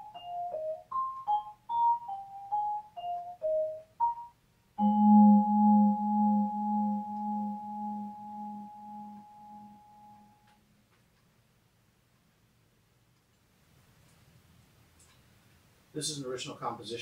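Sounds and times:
vibraphone with tremolo: 0.0s - 10.2s.

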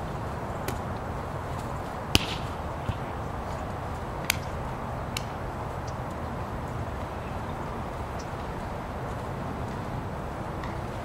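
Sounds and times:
hand smacking volleyball: 2.1s - 3.0s.

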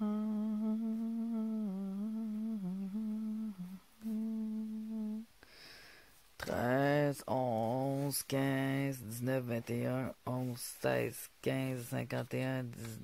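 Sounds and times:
person humming: 0.0s - 5.3s.

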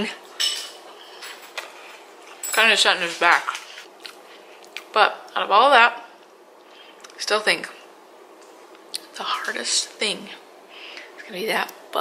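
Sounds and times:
cutlery clink: 0.3s - 2.8s.

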